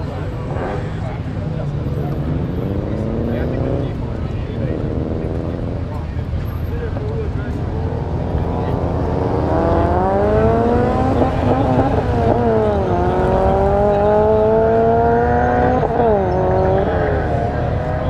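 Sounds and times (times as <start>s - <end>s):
car engines rumbling: 0.0s - 18.0s
engine revving up in pitch: 8.1s - 18.0s.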